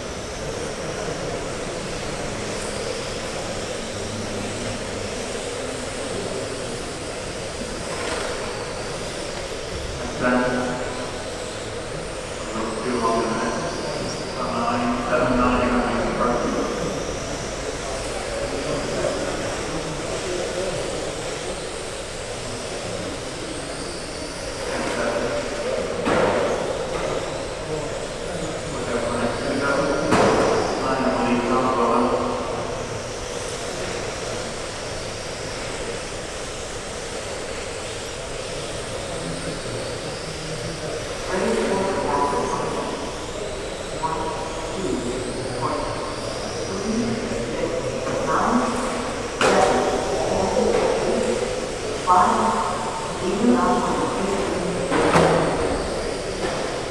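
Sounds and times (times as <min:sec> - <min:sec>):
rc car motors whining: 0:00.0 - 0:56.9
indistinct voices: 0:38.4 - 0:56.9.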